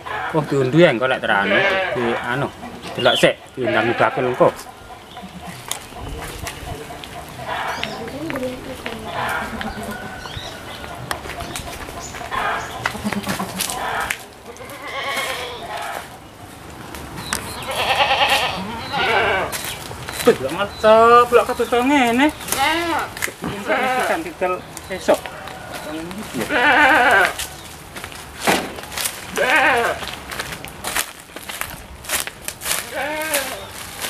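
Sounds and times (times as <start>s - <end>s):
goats bleating: 0.1s - 5.7s, 6.8s - 10.2s, 12.3s - 16.1s, 17.6s - 19.6s, 22.4s - 27.4s, 29.3s - 30.1s, 32.8s - 33.8s.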